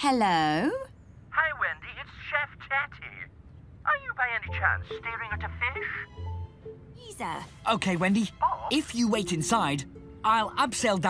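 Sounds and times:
background music: 4.0 - 11.0.

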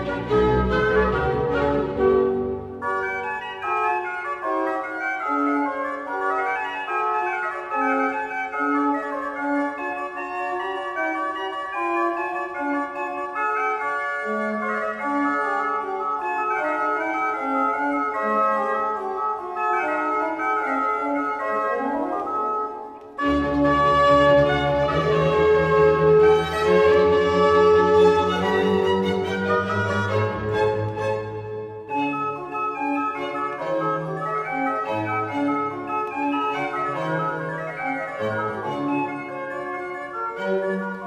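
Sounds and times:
orchestra playing: 0.0 - 13.4, 14.2 - 41.0
organ playing fast passage: 0.0 - 41.0.

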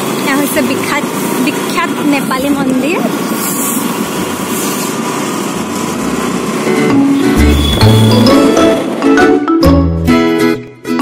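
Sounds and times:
road noise: 0.0 - 10.9.

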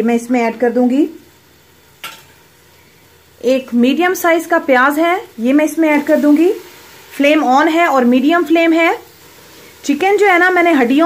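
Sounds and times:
faint steady hiss: 0.0 - 11.0
kitchenware clink: 2.0 - 2.4.

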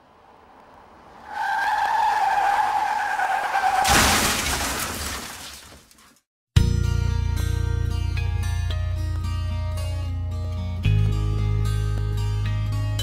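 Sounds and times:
tyre screech: 1.0 - 4.0
loud crash: 3.7 - 5.8
guitar music: 6.6 - 13.0.

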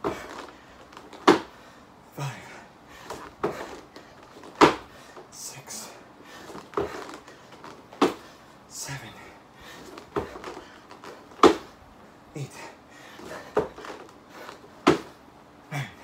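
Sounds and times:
hands and feet landing on foam mats: 0.0 - 1.6, 3.1 - 4.9, 6.4 - 8.3, 9.8 - 11.8, 13.2 - 15.2
short hard breaths: 12.4 - 14.7.

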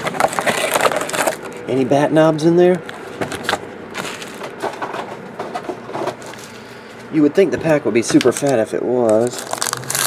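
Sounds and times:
foil packs crinkling: 0.0 - 1.8, 2.9 - 4.7, 8.2 - 10.0.

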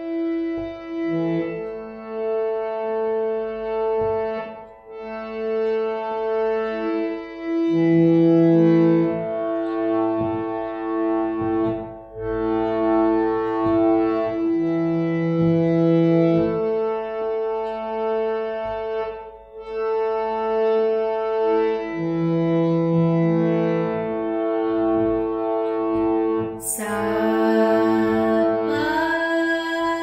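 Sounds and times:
harmonium held reed notes: 0.0 - 30.0.

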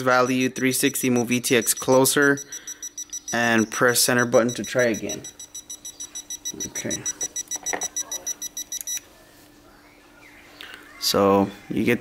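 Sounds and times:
rapid high electronic beeps: 0.0 - 9.0.

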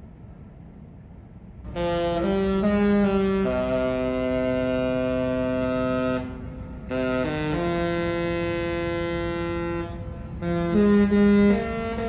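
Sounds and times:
musical ship's horn: 1.7 - 12.0.

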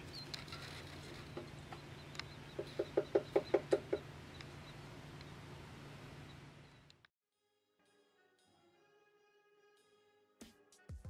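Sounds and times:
woodpecker tapping on wood: 0.0 - 5.4.

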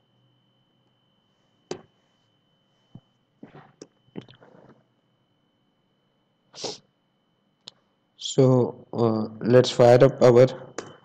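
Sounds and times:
person sneezing: 6.6 - 6.8.

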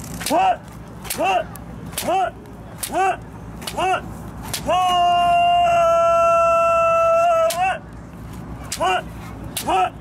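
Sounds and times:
person shouting: 0.3 - 0.6, 1.2 - 7.8, 8.8 - 10.0.

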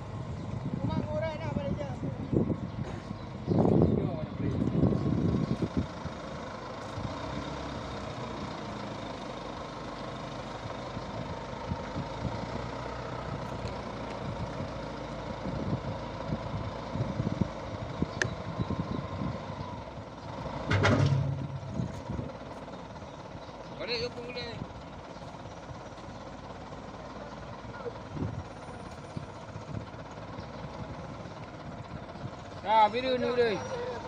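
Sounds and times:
diesel engine running: 0.0 - 34.0.

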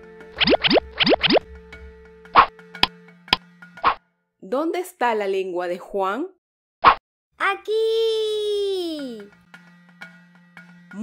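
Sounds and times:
cartoon sound effects sliding upward: 0.4 - 1.4.

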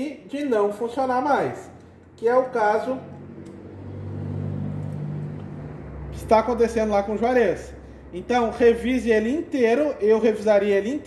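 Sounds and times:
low motor hum: 1.8 - 9.7.

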